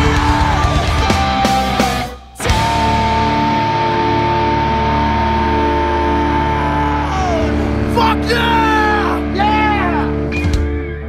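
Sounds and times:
electric guitars sustained chord: 0.0s - 11.0s.

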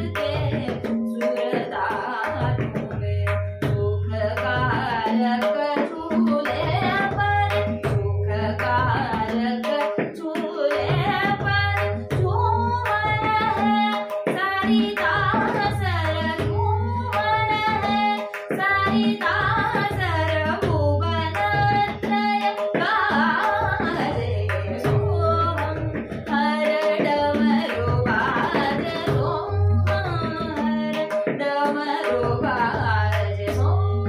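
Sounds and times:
tabla bass drum strokes: 0.0s - 34.0s
tabla treble drum strokes: 0.0s - 34.0s
woman singing: 0.0s - 34.0s.

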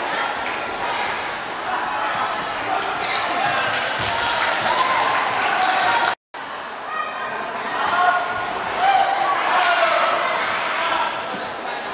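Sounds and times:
people talking in echoing hall: 0.0s - 11.9s.

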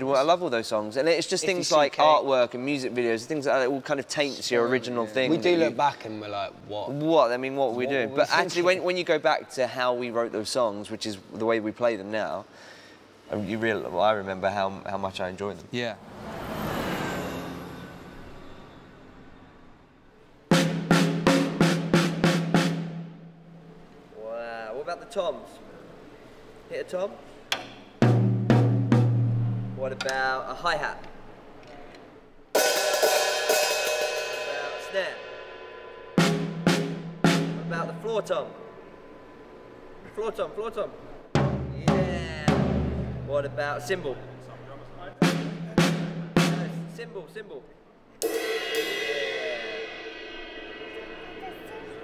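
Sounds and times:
cymbal ringing: 16.4s - 20.0s, 32.6s - 40.0s, 48.2s - 52.0s
drumstick hitting tom-tom: 27.5s - 30.2s.

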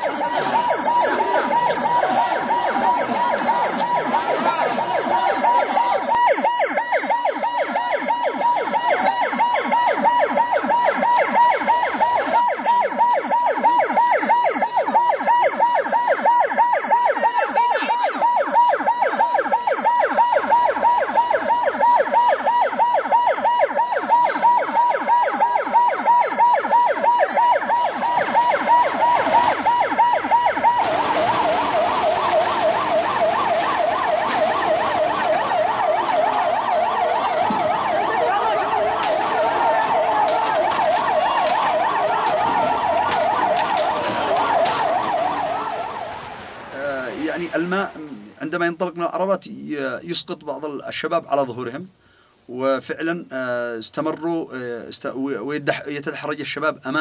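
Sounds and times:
emergency vehicle siren yelping: 0.0s - 48.5s.

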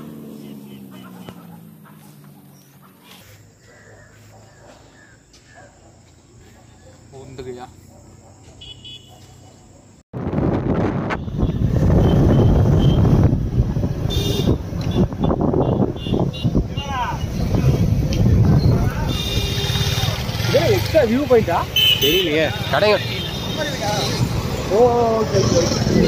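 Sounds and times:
motorcycle road noise: 0.0s - 26.0s
wind on microphone: 10.2s - 19.2s.

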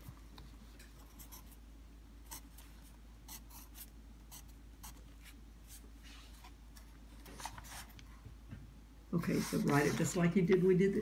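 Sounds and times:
pencil scratching on paper: 9.2s - 10.2s.

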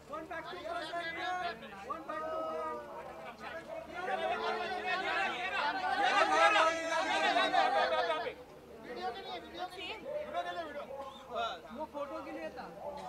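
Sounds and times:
many people shouting: 4.0s - 8.3s.

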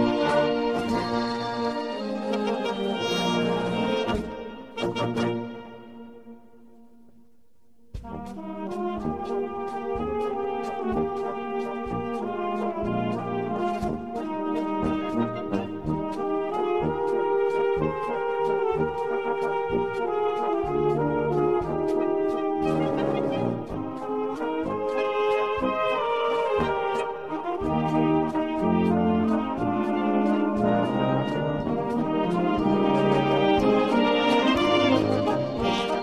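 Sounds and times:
brass band playing: 0.0s - 36.0s
tuba bass line: 0.0s - 36.0s
drum and cymbal beats: 7.3s - 18.9s.

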